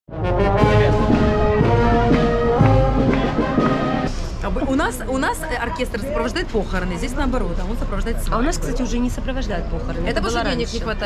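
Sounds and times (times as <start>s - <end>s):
brass band playing: 0.1s - 4.4s.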